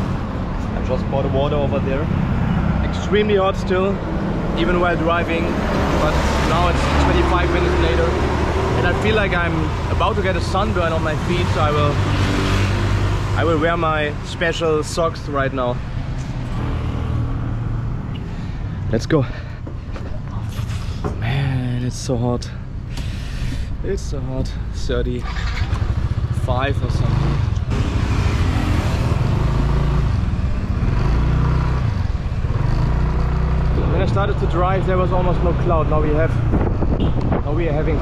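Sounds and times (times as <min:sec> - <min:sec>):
road traffic noise: 0:00.0 - 0:38.0
wind noise on microphone: 0:36.2 - 0:38.0.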